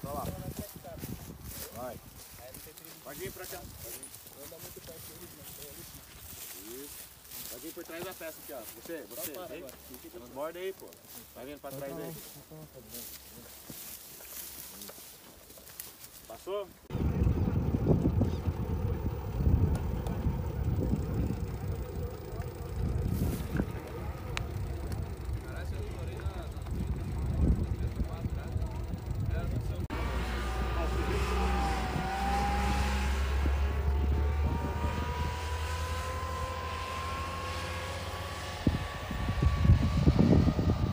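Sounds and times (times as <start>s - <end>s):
armoured vehicle engine humming: 0.0s - 40.9s
rising engine whine: 16.9s - 40.9s.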